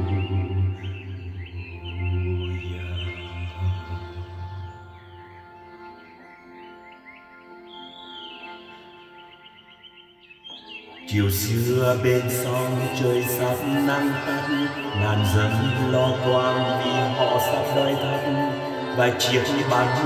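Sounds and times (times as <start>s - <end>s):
accordion sustained chords: 0.0s - 20.0s
birds chirping: 0.0s - 20.0s.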